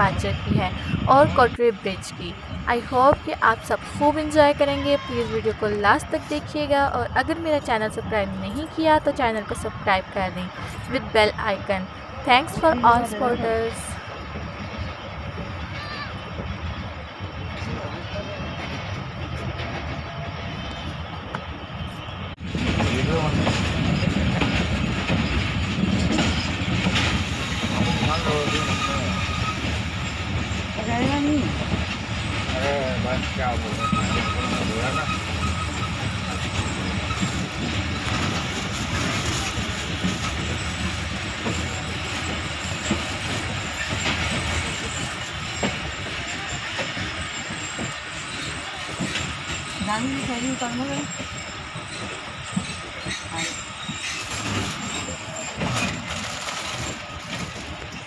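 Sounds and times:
train wheels rumbling on rails: 0.0s - 58.0s
faint voices: 43.2s - 57.9s.

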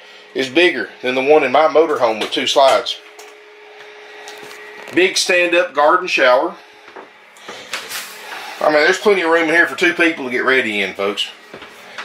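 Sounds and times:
mechanical hum with hiss: 0.0s - 12.0s.

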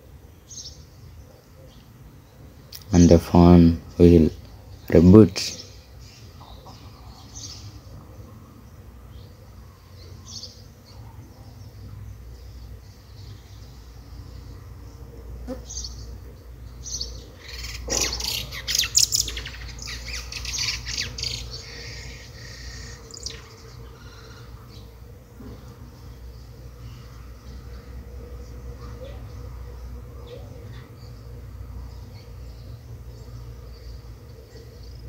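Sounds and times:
birds calling: 0.0s - 35.0s
steady low hum: 0.0s - 35.0s.

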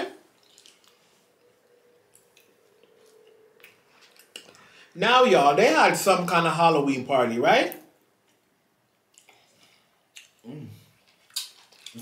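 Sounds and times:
wet mouth clicks and smacks: 11.1s - 12.0s.

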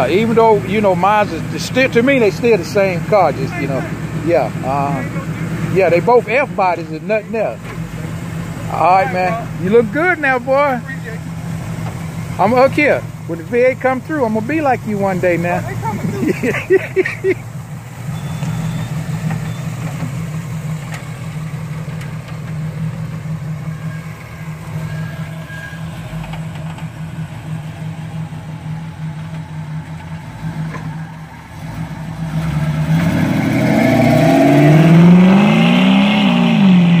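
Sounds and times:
car engine idling and revving: 0.0s - 37.0s.

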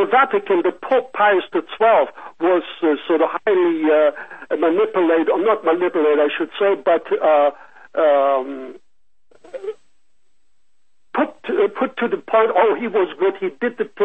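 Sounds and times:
person talking over telephone: 0.0s - 9.8s, 11.2s - 14.0s.

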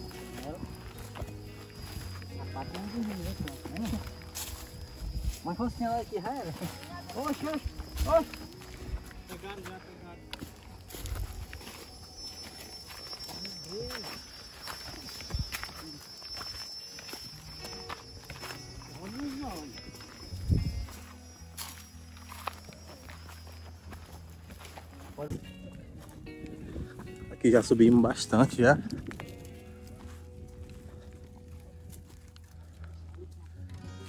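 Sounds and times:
footsteps on leaves and stones: 0.0s - 34.0s.

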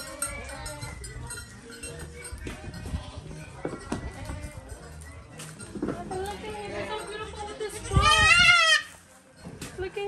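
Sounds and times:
goat kid bleating: 7.5s - 8.9s.

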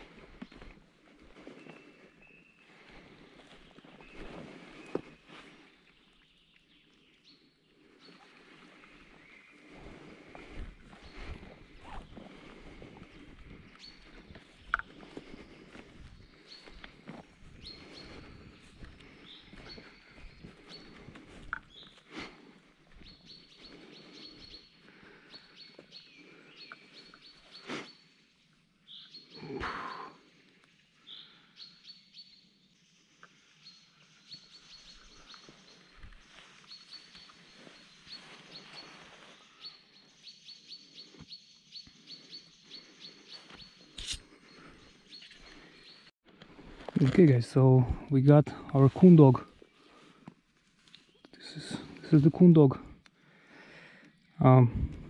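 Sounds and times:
footsteps on wet ground: 0.0s - 5.7s, 8.2s - 25.9s, 34.9s - 39.8s
birds chirping: 0.0s - 46.1s, 46.9s - 55.0s.

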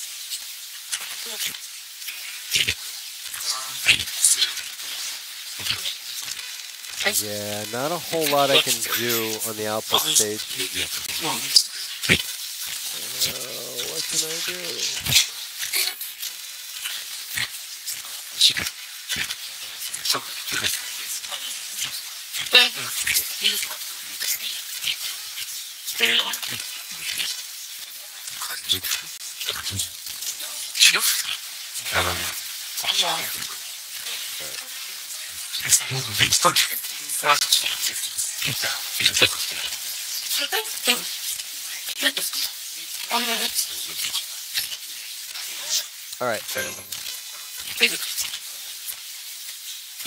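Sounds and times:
fragments of broadcast voices: 7.0s - 12.2s, 12.8s - 15.2s, 29.5s - 29.9s, 31.9s - 33.5s, 34.1s - 34.7s, 35.3s - 39.7s, 43.1s - 44.1s, 45.6s - 47.0s.

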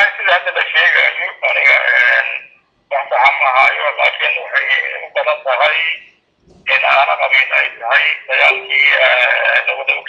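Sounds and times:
person talking over telephone line: 0.0s - 10.0s.

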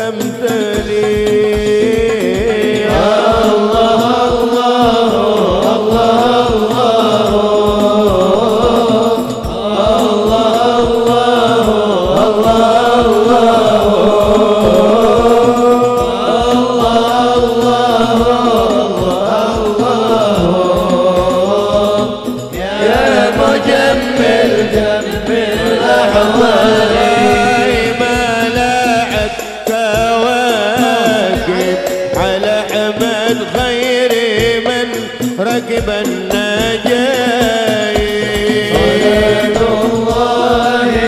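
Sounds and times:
fast hand drum beat: 0.0s - 41.0s
men singing devotional song: 0.0s - 41.0s.

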